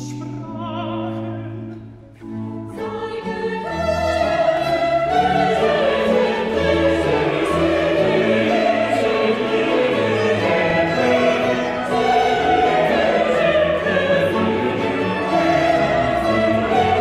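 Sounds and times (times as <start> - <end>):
baroque orchestra playing: 0.0 - 17.0
choir singing: 2.6 - 17.0.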